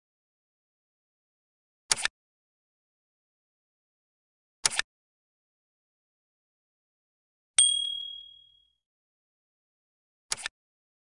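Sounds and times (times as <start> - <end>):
notification bell ding: 7.6 - 8.5.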